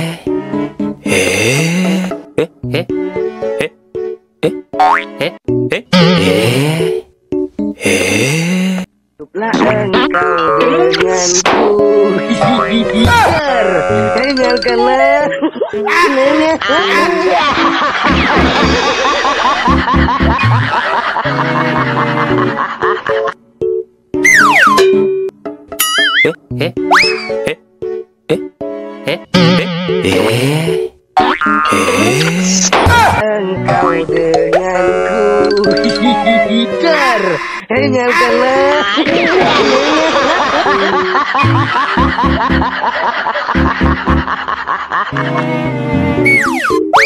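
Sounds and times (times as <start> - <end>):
comic snickering laugh: 12.2 - 13.4, 15.3 - 23.4, 35.8 - 37.2, 38.1 - 45.5
background music with thumping beat: 18.1 - 18.8, 43.6 - 44.3.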